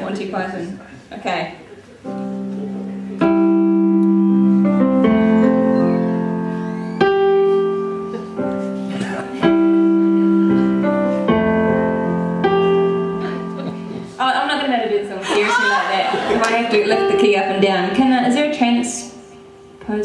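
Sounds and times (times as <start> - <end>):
piano chords ringing: 2.0 - 20.0.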